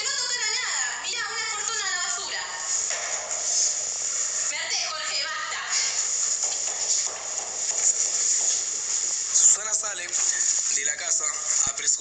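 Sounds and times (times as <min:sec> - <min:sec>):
recording hiss: 0:00.0 - 0:12.0
actors speaking lines: 0:08.7 - 0:12.0.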